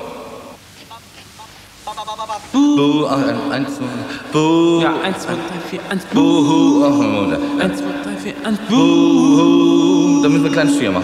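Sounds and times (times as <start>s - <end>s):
background hiss: 0.0s - 11.0s
person's voice: 2.5s - 11.0s.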